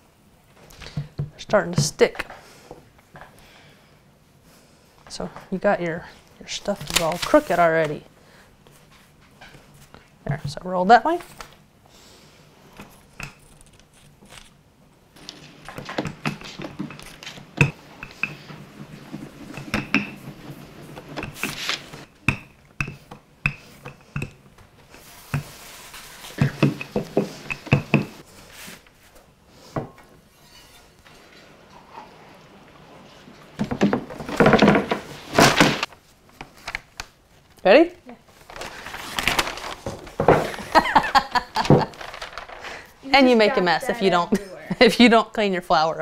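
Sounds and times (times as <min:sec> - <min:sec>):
baking dish rustling and knocking: 0:15.2 - 0:24.4, 0:26.3 - 0:28.2
rolling pin rolling dough: 0:15.2 - 0:28.8.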